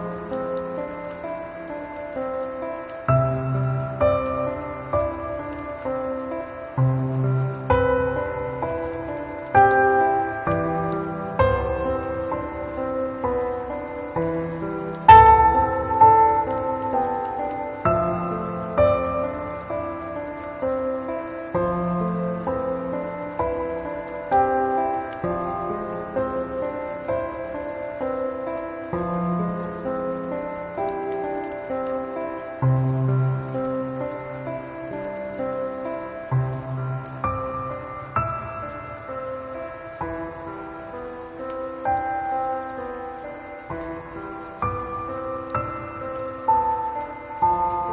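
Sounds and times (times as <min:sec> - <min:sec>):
rain: 0:00.0 - 0:47.9
slow calm piano music: 0:00.0 - 0:47.9.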